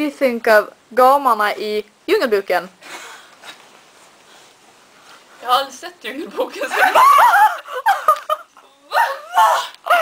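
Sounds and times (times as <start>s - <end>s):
woman laughing while talking: 6.6s - 8.5s.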